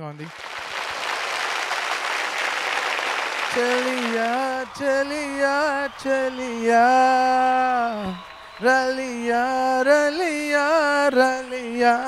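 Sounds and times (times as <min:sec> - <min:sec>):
audience applauding: 0:00.3 - 0:12.0.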